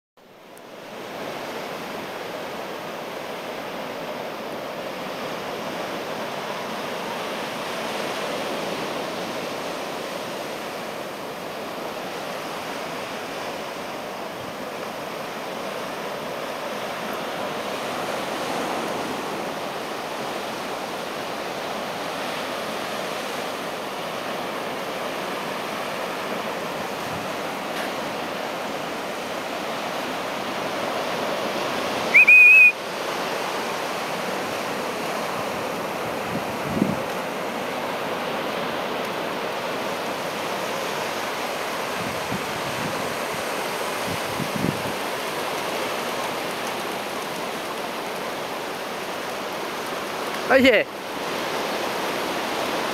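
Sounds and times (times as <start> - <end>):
small waves breaking on beach: 0.2 - 52.9
loud high whistle: 32.1 - 32.8.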